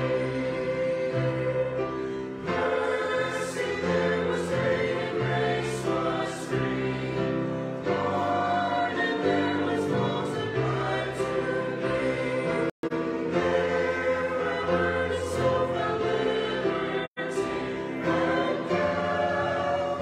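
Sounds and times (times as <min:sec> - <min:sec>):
choir singing in harmony: 0:00.0 - 0:20.0.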